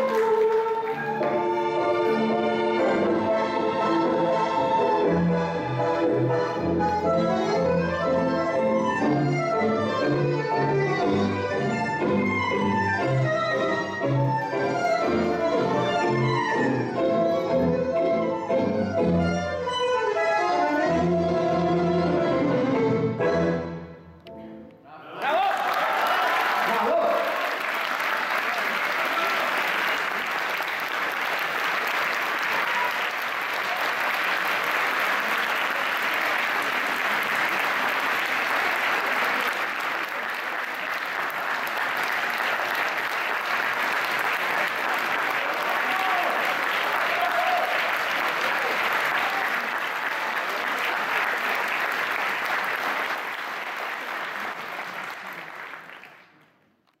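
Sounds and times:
large audience applauding: 0.0s - 2.8s, 25.2s - 56.6s.

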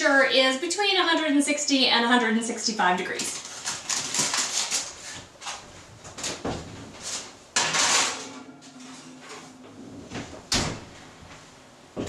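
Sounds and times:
oven door opening: 7.6s - 11.1s
oven door banging shut: 10.5s - 10.9s.

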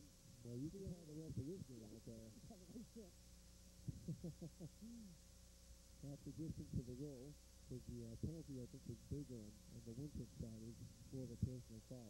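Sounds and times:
low electrical hum: 0.0s - 12.0s
man humming hmm: 0.4s - 3.0s, 3.9s - 5.2s, 6.0s - 12.0s
man murmuring: 0.4s - 3.1s, 3.9s - 5.2s, 6.0s - 12.0s.

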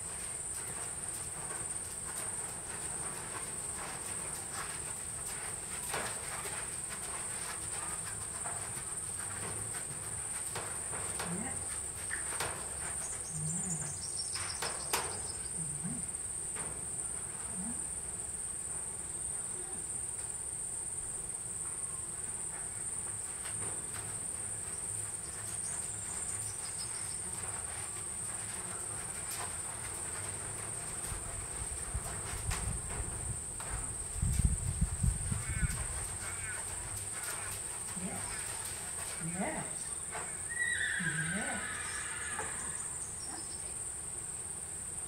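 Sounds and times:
insects droning: 0.0s - 45.0s.

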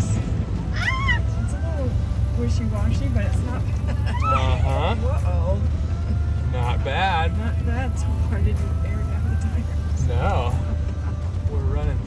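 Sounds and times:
low engine drone: 0.0s - 12.0s
voices calling out: 0.0s - 12.0s.

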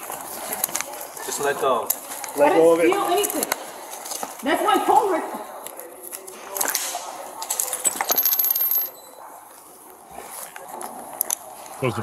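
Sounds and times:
handcuffs clicking and jingling: 7.4s - 9.0s.

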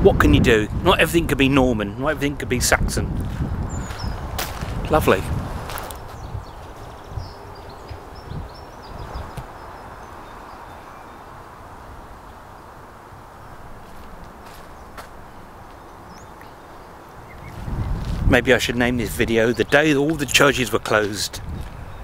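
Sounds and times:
low outdoor rush: 0.0s - 22.0s.

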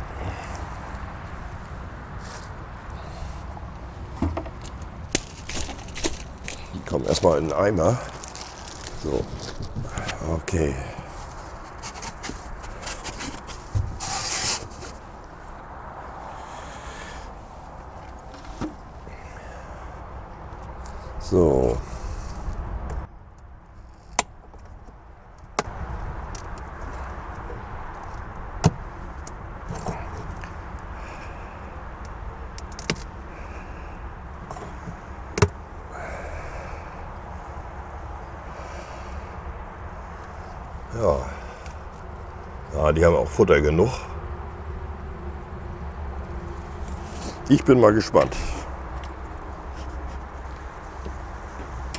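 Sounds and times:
clicks and knocks of wood and metal: 4.1s - 10.2s, 11.0s - 15.0s, 18.0s - 18.9s, 22.8s - 30.6s, 32.0s - 33.1s, 34.4s - 35.6s, 48.2s - 51.9s
rustling and scraping of panel: 11.1s - 15.1s.

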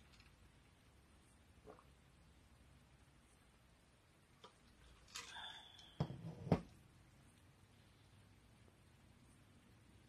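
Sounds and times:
glass mug knocking on surface: 6.0s - 6.7s.

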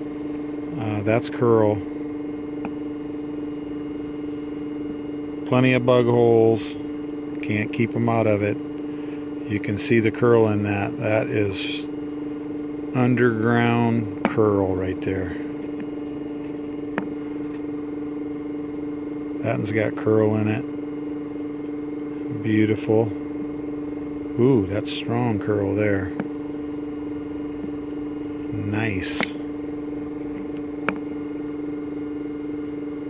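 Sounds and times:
steady hum: 0.0s - 33.0s.

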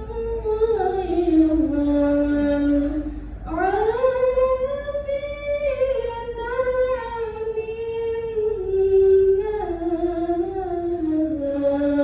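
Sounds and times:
woman chanting: 0.0s - 12.0s.

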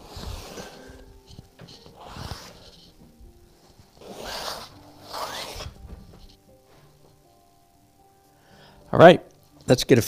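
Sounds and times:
stick scraping across canvas: 0.0s - 6.9s.

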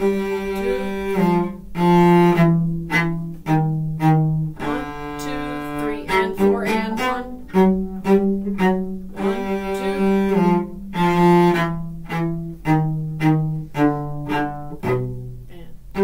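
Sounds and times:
bowed cello march: 0.0s - 16.0s.

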